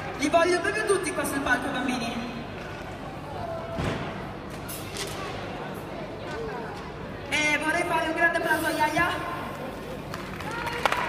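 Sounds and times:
audience hand claps: 0:10.0 - 0:11.0.

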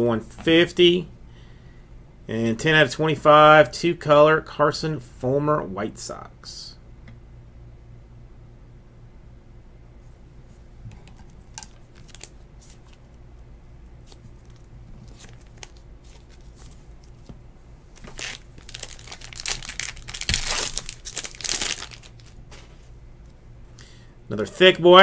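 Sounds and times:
foil pack tearing and crinkling: 0:11.5 - 0:13.0, 0:14.0 - 0:17.3, 0:18.0 - 0:22.4.

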